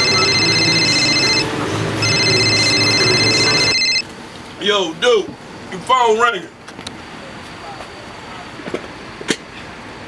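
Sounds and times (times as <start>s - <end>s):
phone electronic trilling ring: 0.0s - 4.0s.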